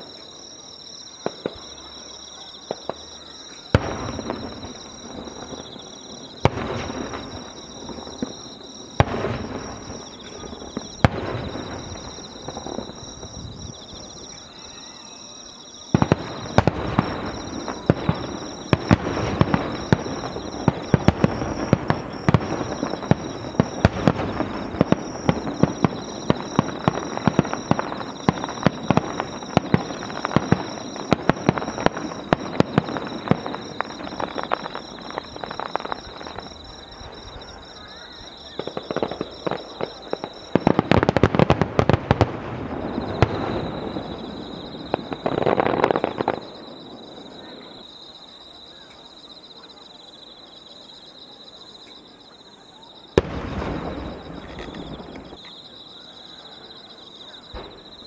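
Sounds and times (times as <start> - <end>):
crackling firework barrage: 0.0 - 48.6, 52.8 - 58.0
firework booms with rumbling tails: 2.7 - 14.3, 15.9 - 47.4, 53.2 - 55.4, 57.5 - 58.0.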